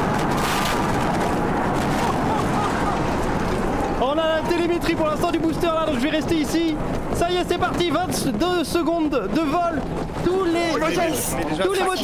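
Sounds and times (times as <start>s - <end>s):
rocket engines roaring: 0.0s - 12.0s.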